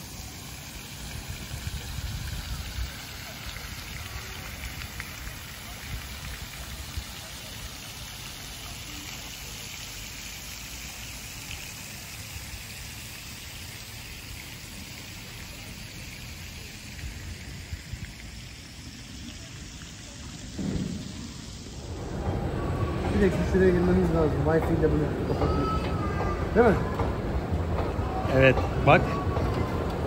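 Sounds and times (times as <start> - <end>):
fountain water splashing: 0.0 - 30.0
low rumble: 20.8 - 24.1.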